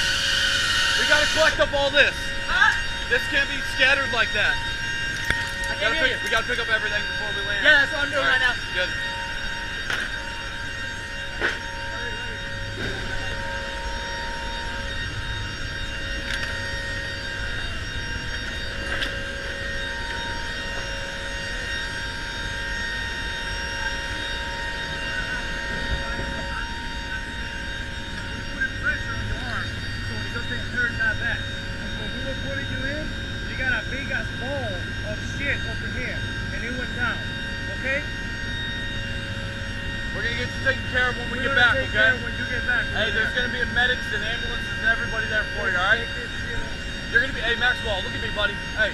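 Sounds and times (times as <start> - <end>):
turboprop engine drone: 0.0 - 48.9.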